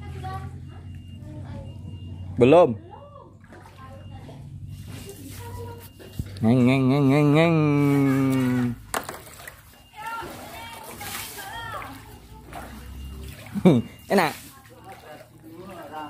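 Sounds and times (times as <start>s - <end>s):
flood water sloshing: 3.1s - 16.0s
man imitating motorboat engine: 6.4s - 8.8s.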